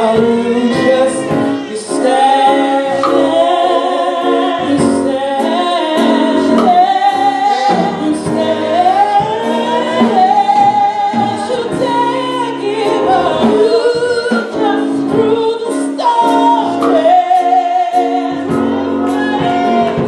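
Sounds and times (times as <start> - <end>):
gospel worship singing: 0.0 - 20.0.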